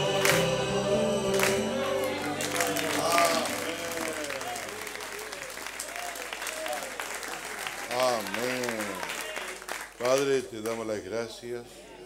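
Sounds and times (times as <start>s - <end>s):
voices calling out: 0.0s - 4.8s
congregation clapping: 0.0s - 11.0s.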